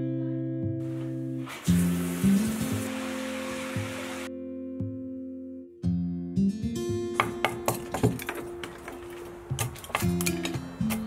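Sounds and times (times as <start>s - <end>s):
acoustic guitar music: 0.0s - 11.0s
water running into bathtub: 0.8s - 4.3s.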